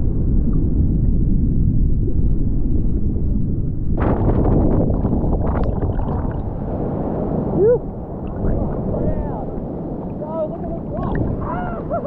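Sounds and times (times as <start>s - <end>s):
wave breaking and churning: 0.0s - 12.0s
splashing water: 4.0s - 6.8s, 8.1s - 12.0s.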